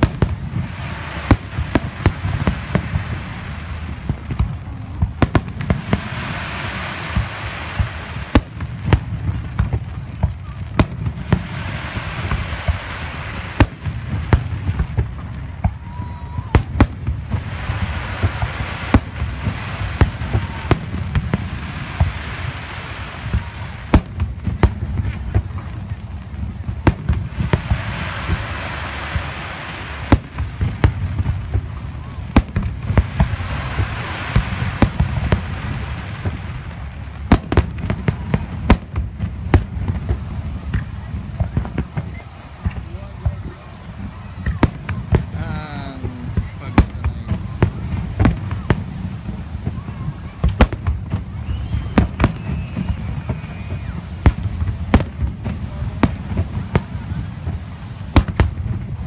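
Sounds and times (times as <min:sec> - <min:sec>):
continuous low rumble: 0:00.0 - 0:59.0
fireworks bursting with sharp bangs: 0:00.0 - 0:59.0.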